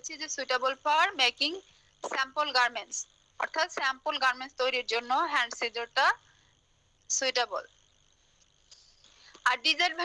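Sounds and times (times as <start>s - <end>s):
faint high-pitched whine: 0.0s - 10.0s.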